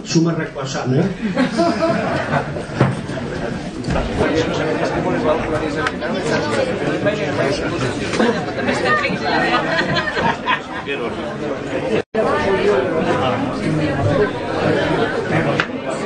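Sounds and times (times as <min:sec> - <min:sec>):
overlapping crowd chatter: 0:00.0 - 0:16.0.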